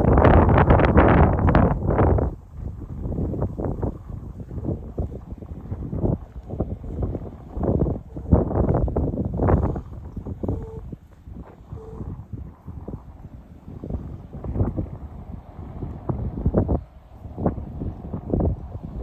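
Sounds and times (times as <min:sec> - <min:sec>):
wind buffeting microphone: 0:00.0 - 0:19.0.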